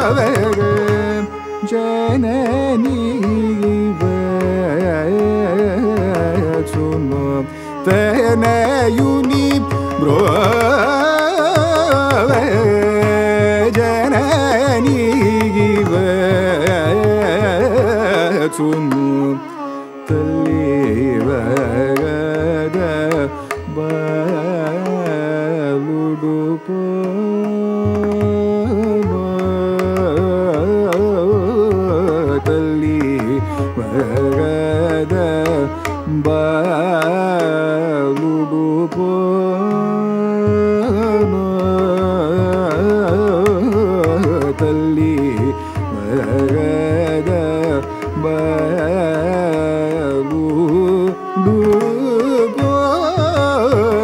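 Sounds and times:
ornamented vocal singing: 0.0s - 54.0s
violin: 0.0s - 54.0s
mridangam drum strokes: 2.1s - 24.2s.

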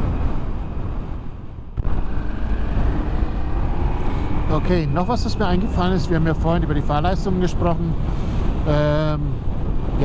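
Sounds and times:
wind noise on microphone: 0.0s - 10.0s.

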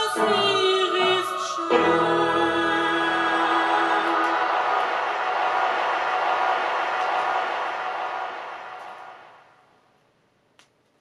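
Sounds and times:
choir singing on vinyl record: 0.0s - 9.3s.

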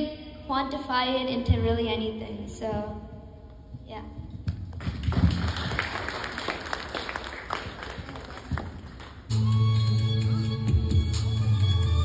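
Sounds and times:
audience applauding: 4.7s - 9.3s.

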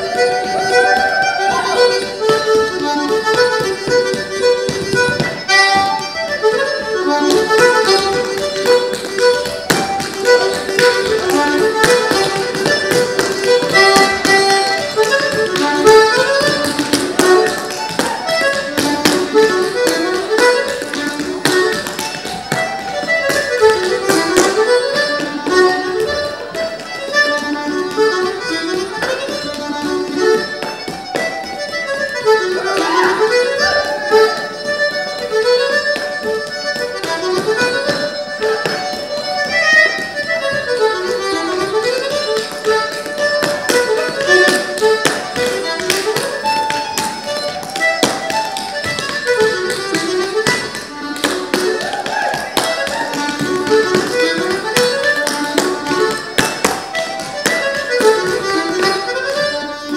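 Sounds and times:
dance shoes tapping on wooden floor: 0.0s - 59.9s
reel tune played live: 0.0s - 59.9s.

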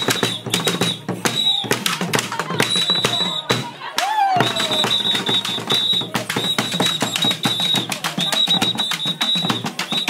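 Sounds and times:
drums beaten with sticks: 0.0s - 10.0s.

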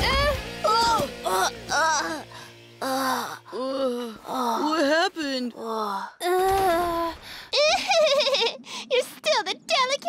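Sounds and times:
cartoon voices groaning in pain: 0.7s - 4.8s.

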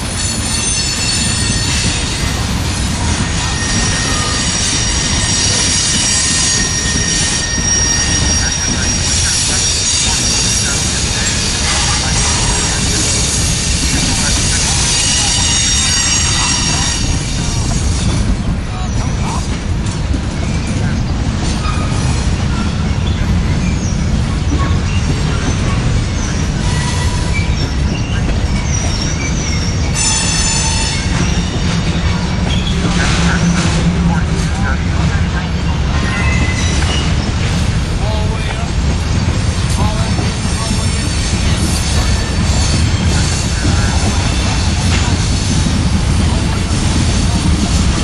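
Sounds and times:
freight cars rumbling on rails: 0.0s - 48.0s
wheel squeals: 0.1s - 2.4s, 3.0s - 19.4s, 20.4s - 33.8s, 35.9s - 38.2s.

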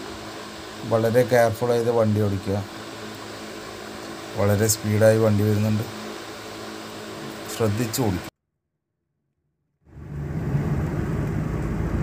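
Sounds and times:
low background hum: 0.0s - 8.3s
person's voice: 0.8s - 2.7s, 4.4s - 5.9s, 7.4s - 8.3s.

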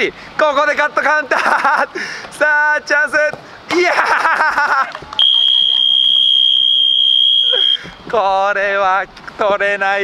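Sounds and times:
high-pitched signal tone: 5.2s - 8.0s.

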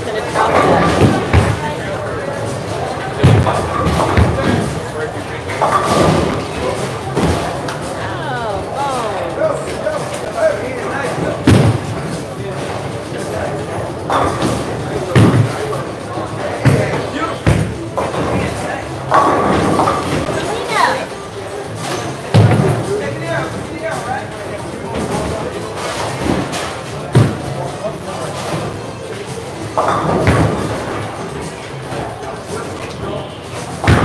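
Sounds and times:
background chatter: 0.0s - 34.0s
bowling balls crashing into pins: 0.5s - 1.6s, 2.6s - 4.9s, 5.5s - 8.0s, 29.8s - 31.2s.

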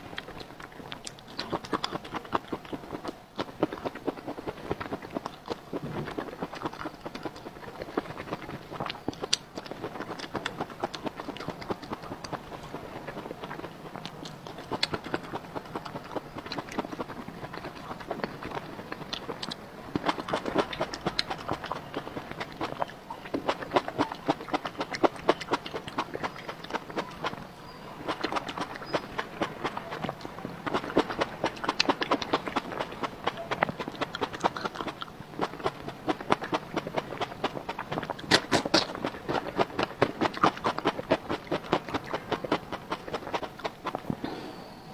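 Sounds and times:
chewing with mouth clicks: 0.0s - 44.4s
lip smacks: 0.1s - 27.4s, 28.0s - 44.4s
tongue clicks: 28.1s - 42.2s.

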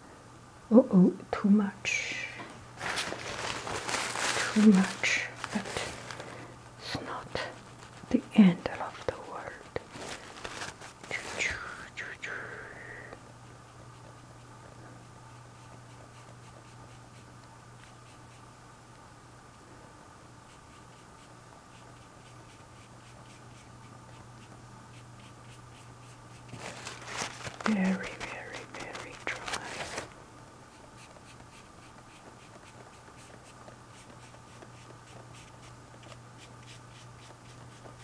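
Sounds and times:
steady low hum: 0.0s - 38.0s
paintbrush strokes: 30.8s - 38.0s.

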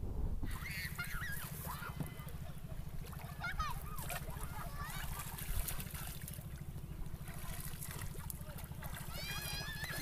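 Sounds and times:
low steady rumble: 0.0s - 10.0s
water sloshing around a rowboat: 0.5s - 10.0s.

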